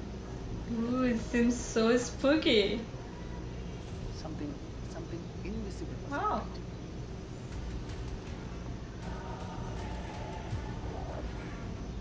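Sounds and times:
low soundtrack rumble: 2.8 - 12.0.

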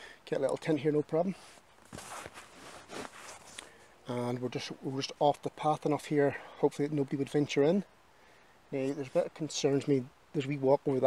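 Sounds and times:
clothing and camp chair rustling: 0.6 - 4.4.

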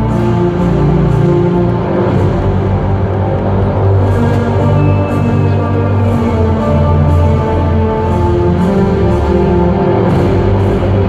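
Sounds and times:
deep held bass notes: 0.0 - 11.0
loud intro music over sound system: 0.0 - 11.0.

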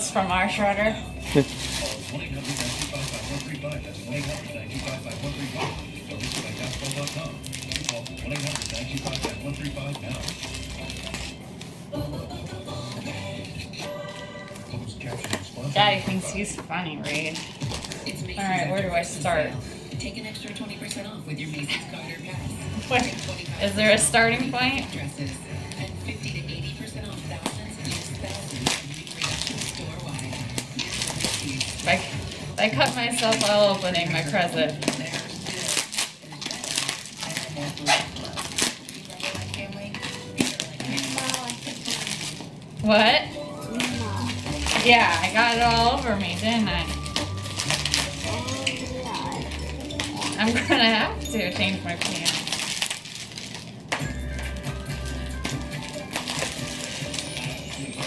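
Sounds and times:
bubble wrap crinkling: 0.0 - 19.5, 20.1 - 58.0
shredded paper rustling: 1.2 - 12.0, 22.0 - 25.9, 27.0 - 42.9, 43.7 - 53.8, 54.4 - 58.0.

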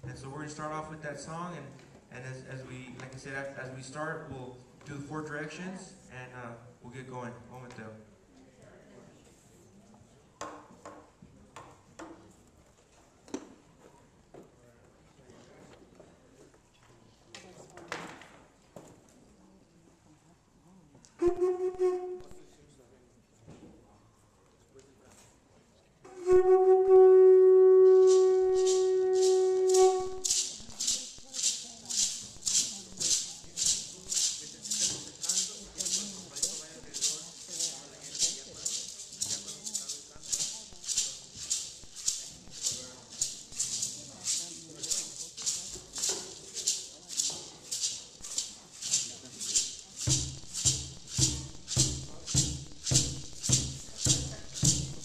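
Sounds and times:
wind instrument long steady note: 26.1 - 31.6
drum beating: 27.8 - 55.0
gourd rattles shaking: 27.9 - 55.0.

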